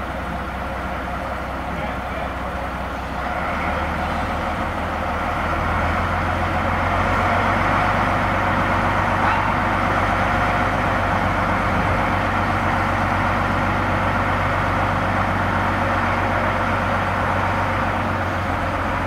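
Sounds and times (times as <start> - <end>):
diesel locomotive engine droning: 0.0 - 19.0.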